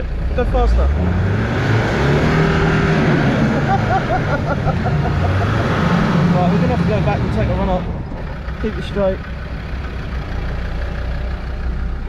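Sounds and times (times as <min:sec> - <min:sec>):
engine running at low revs: 0:00.0 - 0:12.0.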